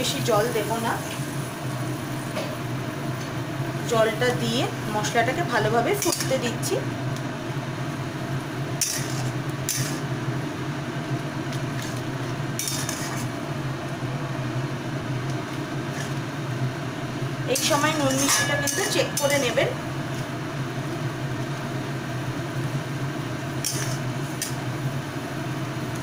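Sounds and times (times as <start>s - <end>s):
gas burner humming: 0.0s - 26.0s
masala frying in oil: 0.0s - 26.0s
sauce bubbling and sizzling: 0.0s - 26.0s.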